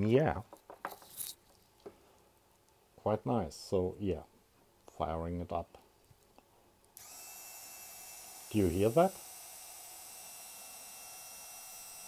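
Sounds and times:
rotary tool whining: 7.0 - 12.0.

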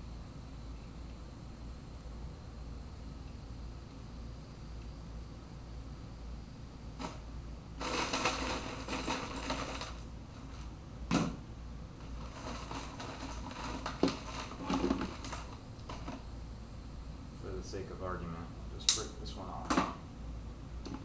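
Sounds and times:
rattling and crinkling: 7.0 - 11.3, 12.0 - 16.2.

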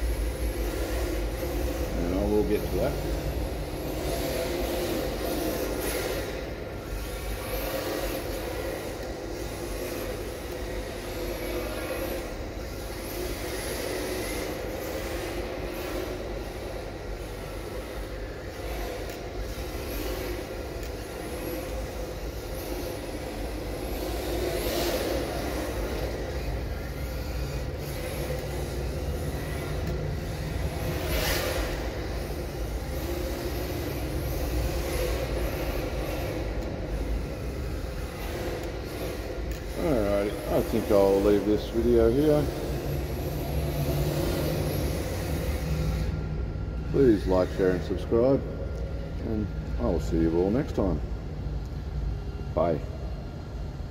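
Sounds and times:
rc car motor whining: 0.0 - 52.5
steady background hum: 0.0 - 53.9.

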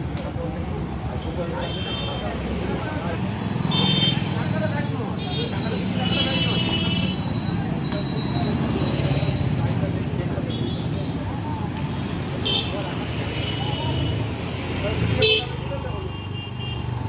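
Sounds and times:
motorcycles and rickshaws passing: 0.0 - 17.0
short high-pitched beeps: 7.0 - 12.4.

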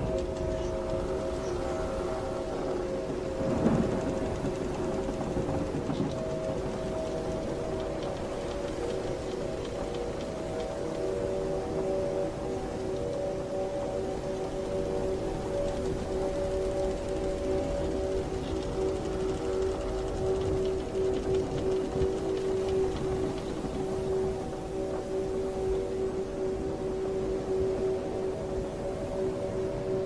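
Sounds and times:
held droning tones: 0.0 - 30.0
ocean wash rumbling: 0.0 - 30.0.

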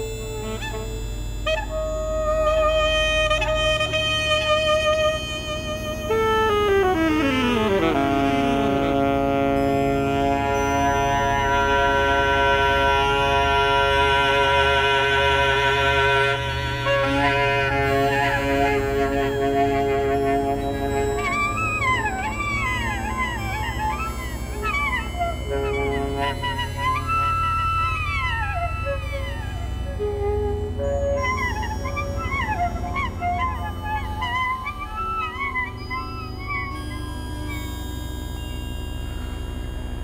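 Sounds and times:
alto saxophone long note: 0.0 - 37.6
steady low drone: 0.0 - 40.0
sustained chord: 0.0 - 40.0.

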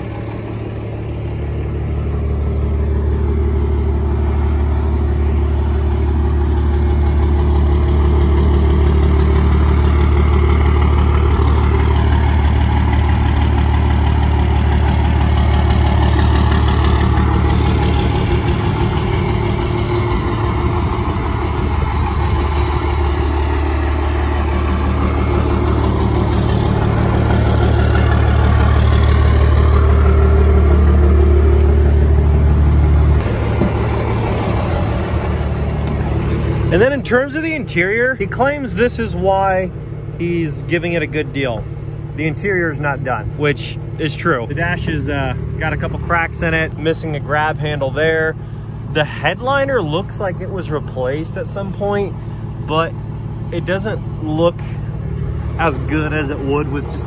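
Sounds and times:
pickup truck engine idling: 0.0 - 57.0.

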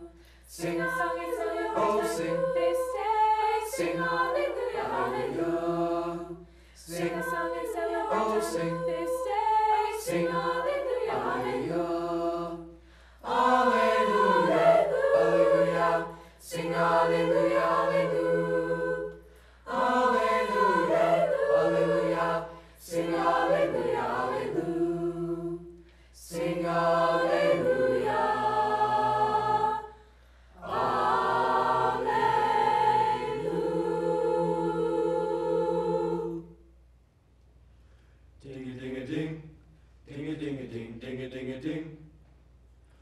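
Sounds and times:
choir singing: 0.0 - 30.0, 30.6 - 36.6.

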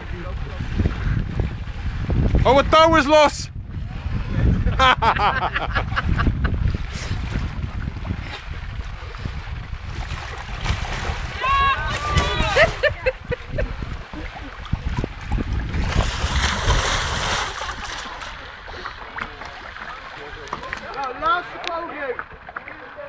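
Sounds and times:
wind rumbling on microphone: 0.0 - 21.6
water splashing and sloshing: 0.0 - 23.0.

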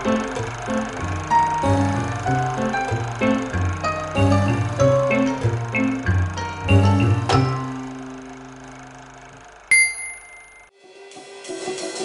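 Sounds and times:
bright bell-like ding: 9.7 - 10.7.

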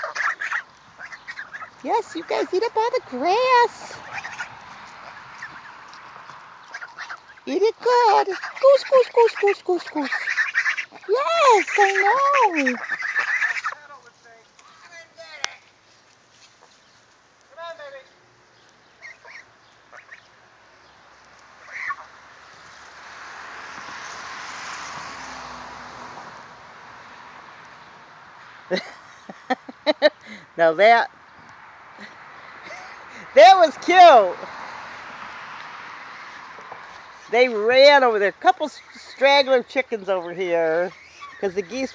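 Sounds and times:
geese calling softly: 0.0 - 15.2, 18.6 - 20.4, 21.5 - 22.2, 40.8 - 41.9.

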